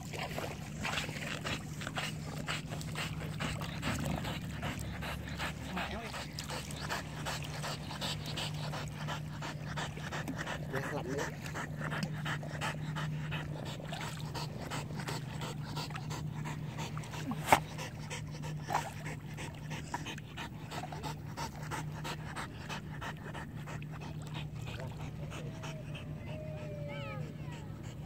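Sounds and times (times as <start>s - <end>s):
dog panting rapidly: 0.1s - 28.0s.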